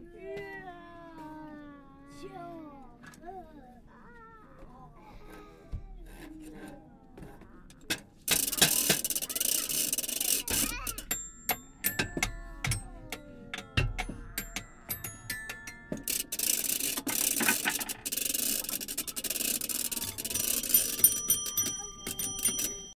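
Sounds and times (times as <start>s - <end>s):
clicks and knocks: 7.7s - 23.0s
steady rubbing noise: 8.3s - 11.2s, 15.7s - 22.9s
held chiming tones: 8.5s - 23.0s
bell-like rings: 19.7s - 23.0s.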